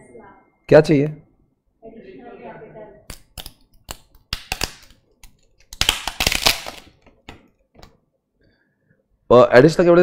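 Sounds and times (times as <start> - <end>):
clicks and taps at a desk: 7.0 - 8.0.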